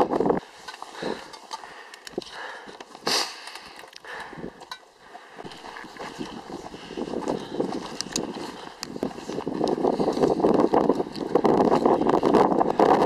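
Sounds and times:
wind on microphone: 0:00.0 - 0:01.2, 0:05.5 - 0:13.0
boots on rock and gravel: 0:00.0 - 0:13.0.

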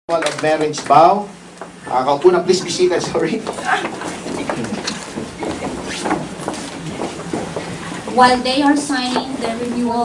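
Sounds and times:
room noise of gathered people: 0:00.1 - 0:10.0.

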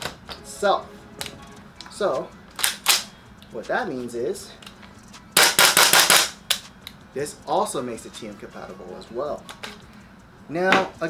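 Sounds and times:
airsoft rifle firing bursts: 0:05.4 - 0:06.4.

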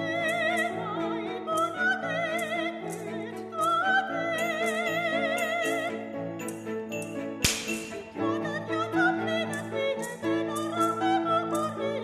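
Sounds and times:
sharp ringing crack: 0:07.4 - 0:08.1.

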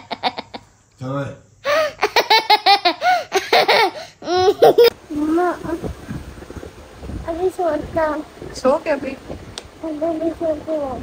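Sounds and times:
young boy giggling: 0:00.0 - 0:00.7, 0:01.7 - 0:05.9.

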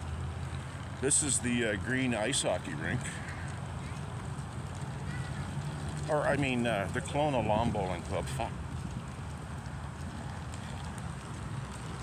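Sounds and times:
wind buffeting microphone: 0:04.7 - 0:12.0.

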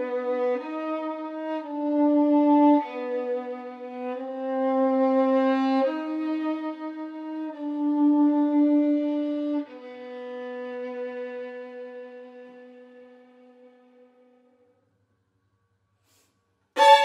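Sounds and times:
solo violin long notes: 0:00.0 - 0:14.5, 0:16.8 - 0:17.0.

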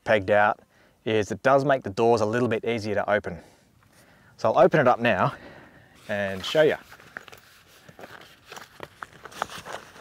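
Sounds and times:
hands rustling canvas: 0:06.0 - 0:10.0.

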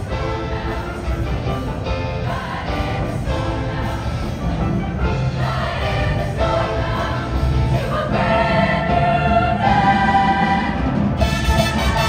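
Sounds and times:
women's choir singing: 0:02.1 - 0:04.5, 0:05.2 - 0:11.1.

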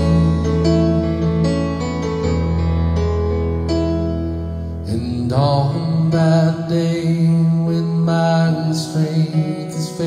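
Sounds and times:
man singing: 0:00.0 - 0:01.3, 0:04.8 - 0:10.0
electric piano: 0:00.0 - 0:10.0.

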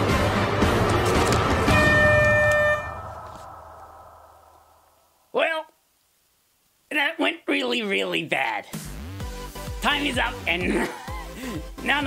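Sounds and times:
horn-like buzzer: 0:01.7 - 0:03.1
upbeat backing music: 0:08.7 - 0:12.0.

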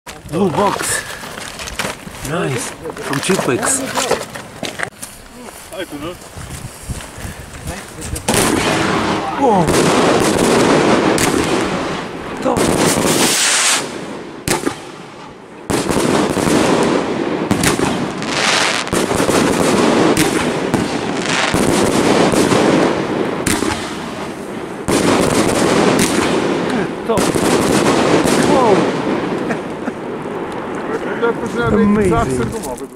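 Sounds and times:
firework crackling bursts: 0:06.2 - 0:30.8.

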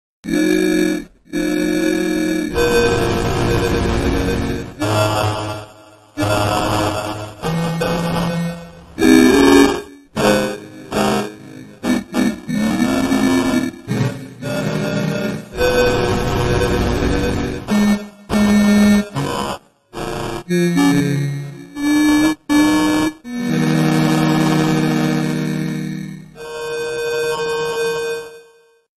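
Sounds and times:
train whistle and horn blasts: 0:07.4 - 0:11.4, 0:15.6 - 0:19.4.

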